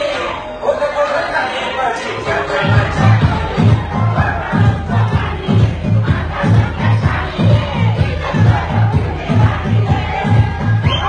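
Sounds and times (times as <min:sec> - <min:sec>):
crowd shouting: 0:00.0 - 0:11.0
loud dance music: 0:01.7 - 0:11.0.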